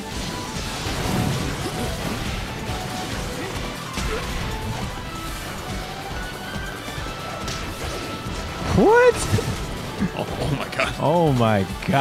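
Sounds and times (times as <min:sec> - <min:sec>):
crashing and smashing impacts: 0:00.0 - 0:10.2
dramatic music: 0:00.0 - 0:12.0.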